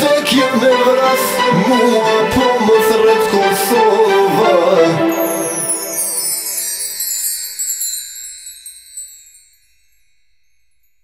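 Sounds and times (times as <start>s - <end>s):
shimmering chime: 0.0s - 11.0s.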